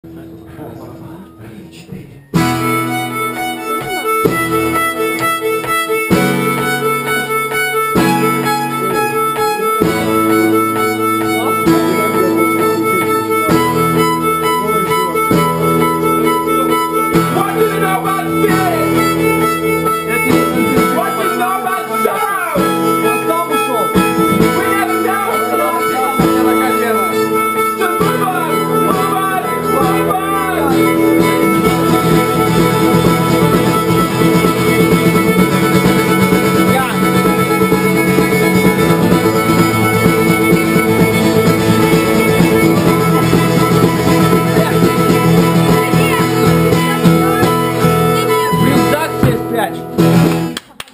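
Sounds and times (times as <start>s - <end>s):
guitar chords: 0.0s - 50.6s
violin playing: 0.0s - 50.6s
sliding melody line: 2.3s - 50.6s.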